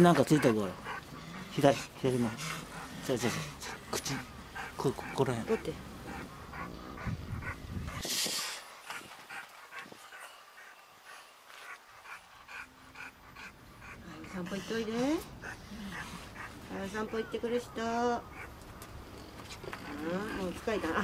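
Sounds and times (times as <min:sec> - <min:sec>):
dog panting: 0:00.0 - 0:21.0.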